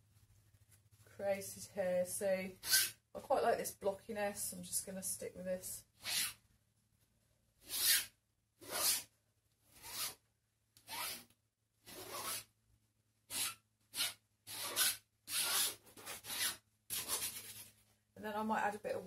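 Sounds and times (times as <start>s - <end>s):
palette knife scraping paint: 11.9s - 12.5s, 13.3s - 17.8s.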